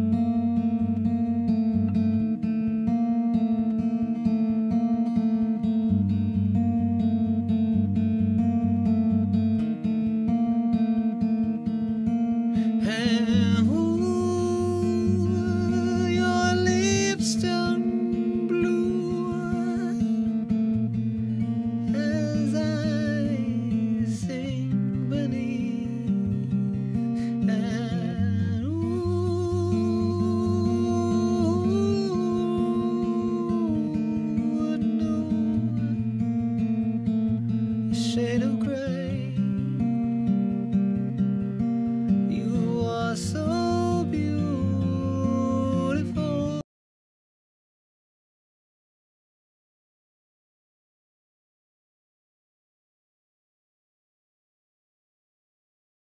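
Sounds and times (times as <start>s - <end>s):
acoustic guitar strumming: 0.0s - 46.6s
man singing: 12.6s - 20.4s, 21.8s - 36.3s, 37.8s - 39.9s, 42.3s - 46.6s.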